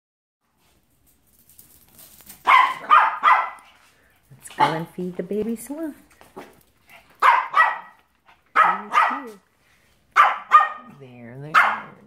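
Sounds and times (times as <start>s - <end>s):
small dog barking: 2.4s - 3.8s, 4.5s - 4.9s, 7.2s - 9.4s, 10.1s - 12.0s.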